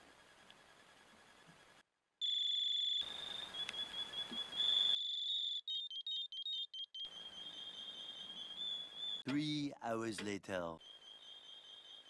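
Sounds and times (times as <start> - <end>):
high-pitched electronic alarm: 2.2 - 9.3.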